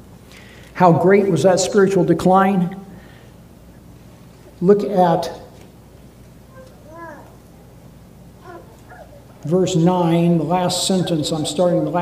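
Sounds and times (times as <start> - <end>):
faint high-pitched voice-like calls: 6.5 - 7.4, 8.4 - 9.4.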